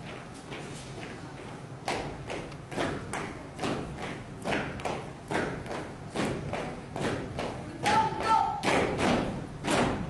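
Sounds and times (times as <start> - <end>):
marching footsteps on hard floor: 0.0 - 10.0.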